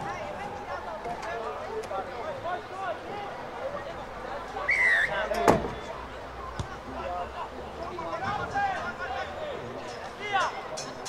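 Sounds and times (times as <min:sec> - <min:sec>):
voices calling out: 0:00.0 - 0:11.0.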